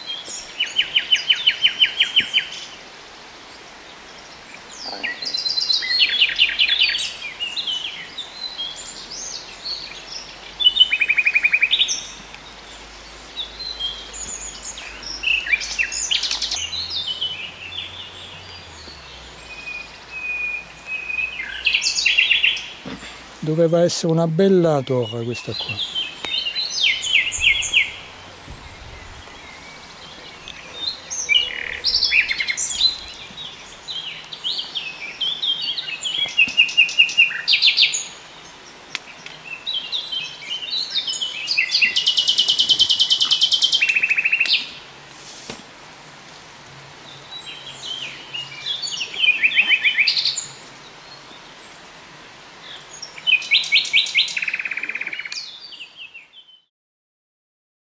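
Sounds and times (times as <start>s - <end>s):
songbirds singing: 0.0s - 45.0s, 45.9s - 56.7s
soft steady background hiss: 0.0s - 56.4s.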